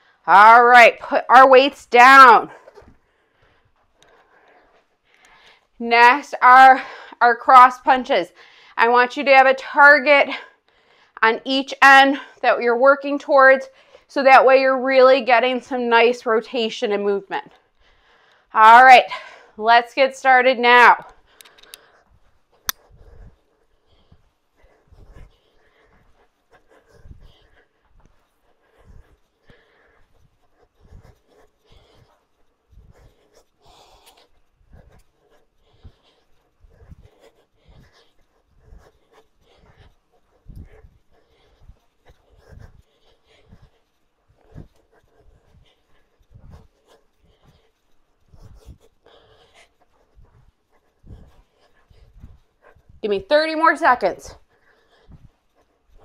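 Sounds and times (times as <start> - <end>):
person panting hard: 0.0 - 0.3, 2.4 - 5.8, 6.7 - 7.2, 8.3 - 8.8, 10.3 - 11.2, 17.6 - 18.5, 19.1 - 19.6, 21.2 - 53.0, 54.2 - 56.0.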